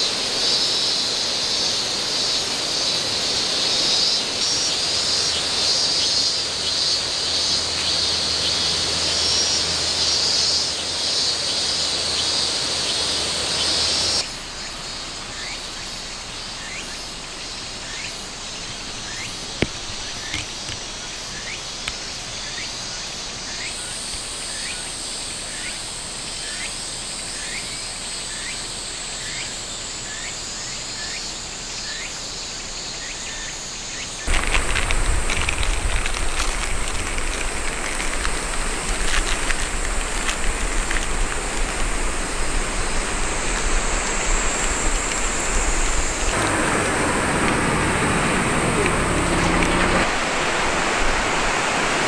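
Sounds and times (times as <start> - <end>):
insects droning: 0.0 - 52.0
outdoor rushing noise: 42.0 - 52.0.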